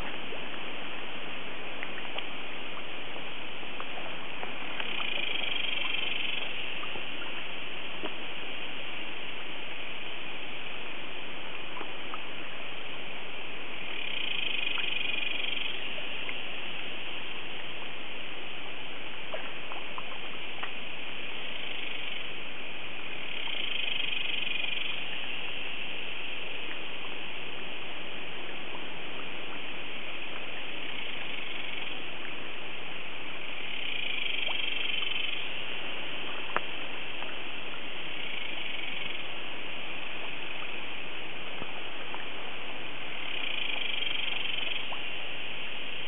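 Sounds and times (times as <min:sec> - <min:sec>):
steady hiss: 0:00.0 - 0:46.0
faint ticks: 0:01.7 - 0:02.9, 0:03.8 - 0:07.4, 0:13.8 - 0:16.4, 0:19.3 - 0:20.8, 0:23.2 - 0:25.4, 0:28.7 - 0:32.4, 0:33.5 - 0:35.6, 0:36.2 - 0:39.4, 0:43.1 - 0:45.2
animal pulsed trill: 0:04.7 - 0:06.9, 0:13.8 - 0:16.0, 0:23.1 - 0:25.3, 0:33.5 - 0:35.7, 0:38.0 - 0:39.4, 0:43.1 - 0:45.0
high-pitched animal chorus: 0:04.8 - 0:06.9.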